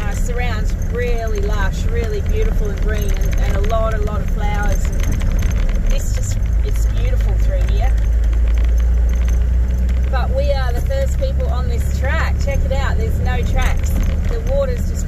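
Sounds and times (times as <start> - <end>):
vehicle engine and tyres rumbling: 0.0 - 15.0.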